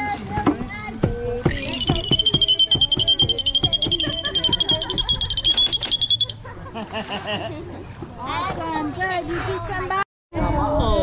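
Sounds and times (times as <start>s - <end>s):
dolphin whistling: 1.5s - 7.9s.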